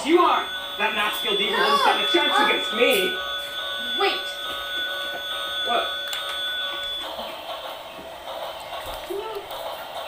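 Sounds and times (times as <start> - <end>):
held electronic tone: 0.0 - 8.0
toy race track whir: 0.0 - 10.0.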